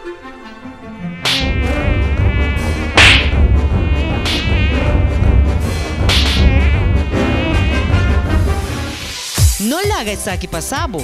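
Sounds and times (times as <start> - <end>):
mosquito buzzing: 0.5 - 9.4
steady low rumble: 1.4 - 9.1.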